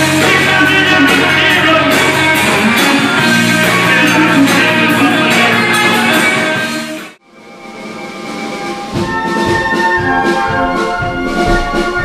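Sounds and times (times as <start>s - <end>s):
brass band playing chords: 0.0s - 12.0s
live rock band music: 0.0s - 12.0s.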